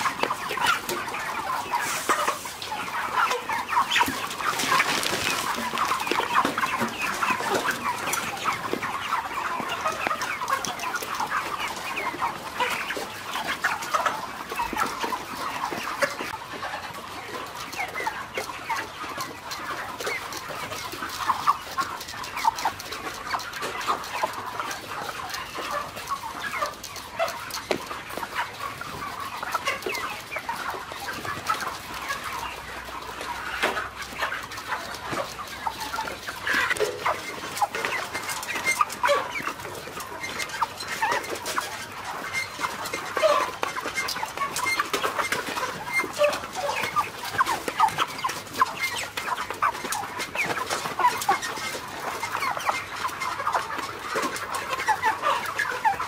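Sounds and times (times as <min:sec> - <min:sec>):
chickens clucking: 0:00.0 - 0:56.0.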